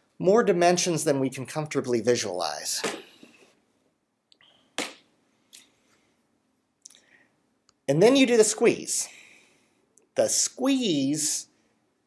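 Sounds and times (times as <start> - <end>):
man speaking: 0.0 - 3.2, 7.9 - 9.2, 10.1 - 11.5.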